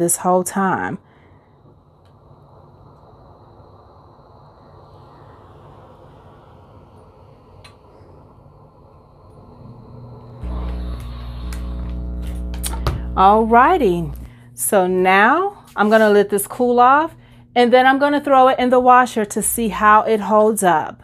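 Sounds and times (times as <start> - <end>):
iron rustling over towel: 15.1 - 17.0.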